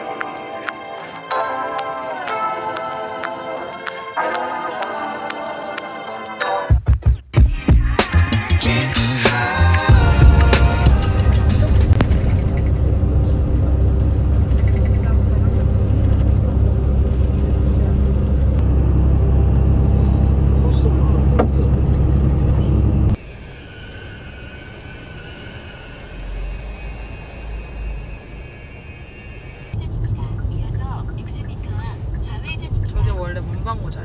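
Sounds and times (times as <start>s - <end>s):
coach engine and road rumble: 0.0s - 6.4s, 7.4s - 34.0s
quiet car interior: 29.5s - 34.0s.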